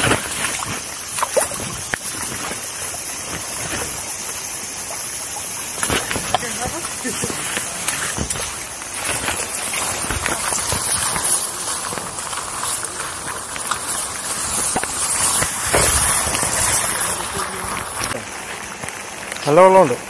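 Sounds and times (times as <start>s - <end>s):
grass and shrubs brushing camera: 5.7s - 18.2s.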